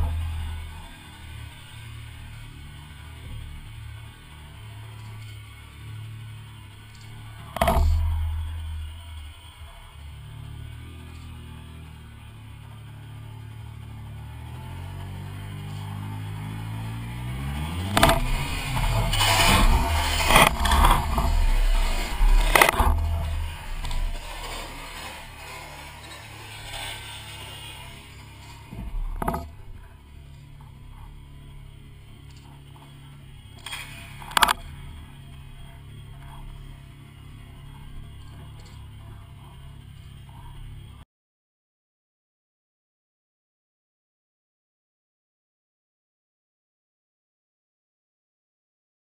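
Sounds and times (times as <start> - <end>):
motorcycle engine running: 0.0 - 41.0.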